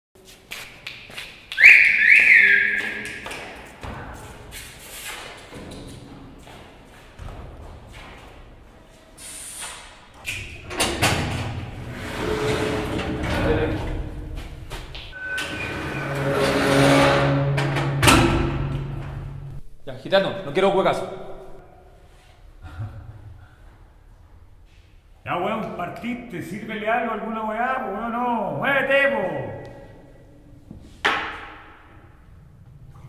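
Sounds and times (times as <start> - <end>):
loud high swooping whistle: 1.6 - 3.3
metal cell door sliding: 9.3 - 19.6.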